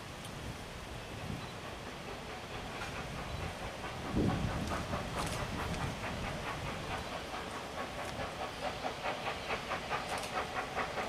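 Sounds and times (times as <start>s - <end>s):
steam hiss: 0.0s - 11.0s
steam locomotive exhaust chuffs: 0.0s - 11.0s.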